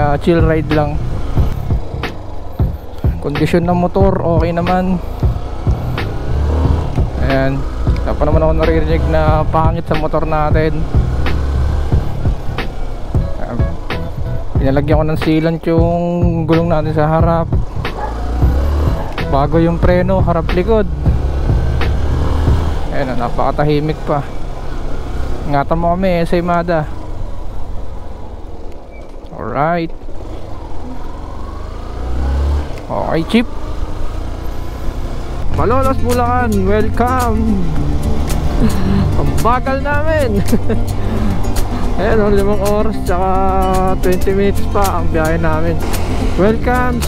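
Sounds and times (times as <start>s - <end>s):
motorcycle engine running: 0.0s - 47.0s
road noise: 0.0s - 47.0s.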